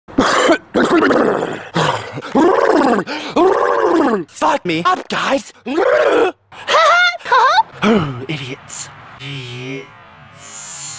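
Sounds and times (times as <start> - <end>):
man making wordless vocal sounds: 0.7 - 6.4, 7.8 - 9.9.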